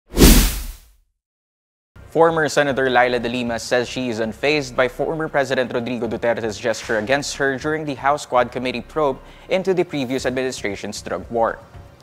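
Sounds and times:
whoosh sound effect: 0.1s - 0.8s.

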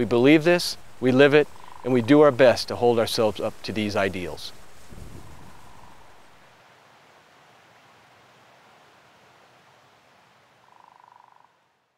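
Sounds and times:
faint steady hiss: 0.0s - 11.9s.

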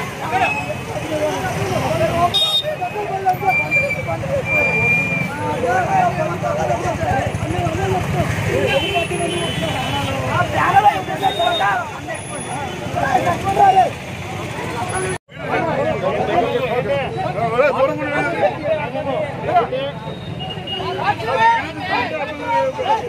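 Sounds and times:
men shouting and arguing: 0.0s - 23.0s
street traffic: 0.0s - 23.0s.

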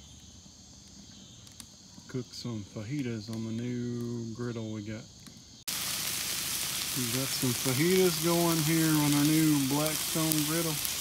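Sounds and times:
insects chirping: 0.0s - 11.0s
wood fire click: 0.8s - 2.1s, 2.9s - 4.3s, 6.8s - 11.0s.

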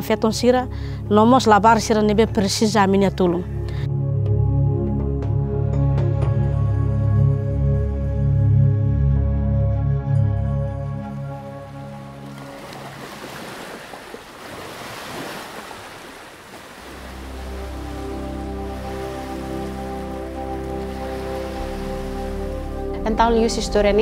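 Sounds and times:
low ambient music drone: 0.0s - 13.2s, 16.9s - 24.0s
soft ambient music: 0.0s - 13.7s, 16.8s - 24.0s
ocean waves on beach: 11.5s - 23.0s.

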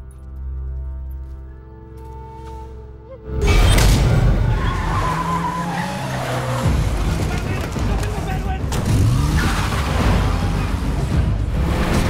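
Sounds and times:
tyres skidding: 1.8s - 12.0s
car engines rumbling: 3.4s - 12.0s.

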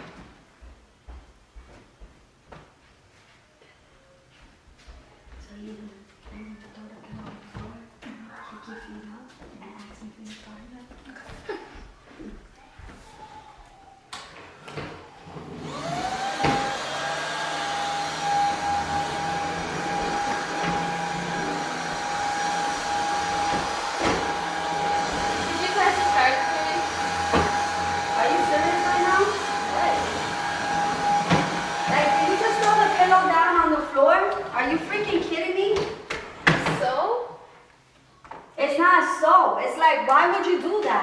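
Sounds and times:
vacuum cleaner motor whine: 14.4s - 35.2s.

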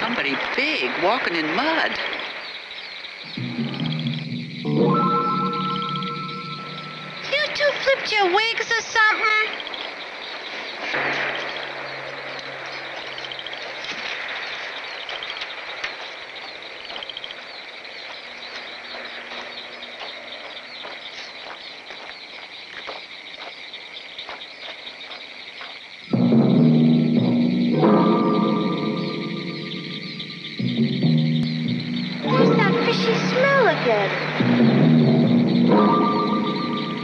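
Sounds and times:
high chirping outdoor ambience: 0.0s - 37.0s
ominous film soundtrack music: 3.2s - 7.4s, 26.1s - 37.0s.

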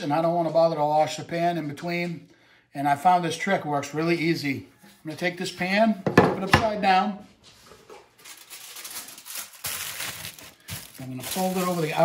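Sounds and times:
aluminium foil crinkling: 7.6s - 12.0s.

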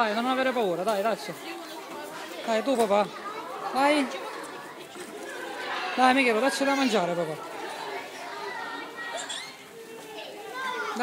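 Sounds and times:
children and adults chattering: 0.0s - 11.0s.

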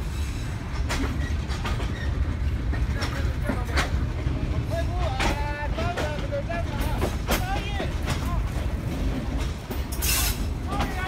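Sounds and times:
train carriage rumble: 0.0s - 11.0s.

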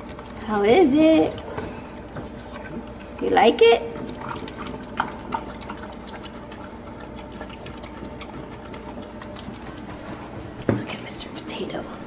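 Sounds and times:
puppy chewing wet food: 0.0s - 12.0s.

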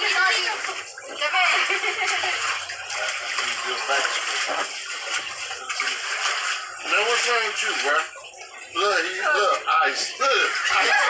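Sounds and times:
voices: 0.0s - 11.0s
water splashing in a pool: 0.0s - 11.0s.

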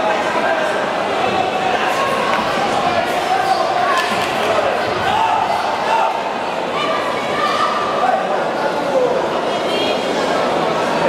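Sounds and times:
crowd shouting in echoing hall: 0.0s - 11.0s.

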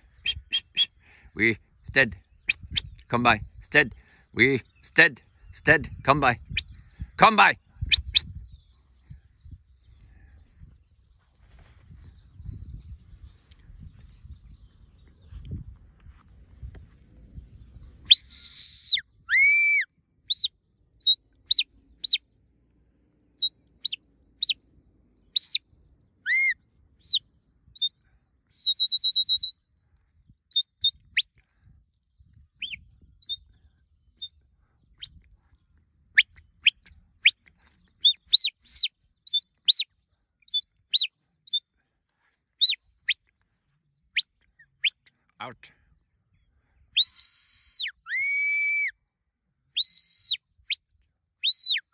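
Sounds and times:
high whistle blasts: 26.3s - 27.2s, 47.0s - 48.9s.

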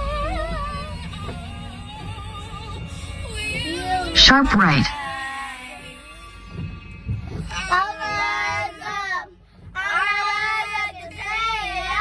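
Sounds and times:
moving vehicle rumble: 0.0s - 12.0s
song with singing: 0.0s - 12.0s.

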